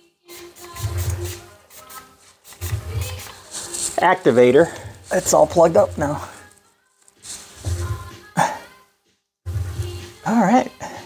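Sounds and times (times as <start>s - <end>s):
background music: 0.0s - 11.0s
rustling handling noise: 2.1s - 8.0s.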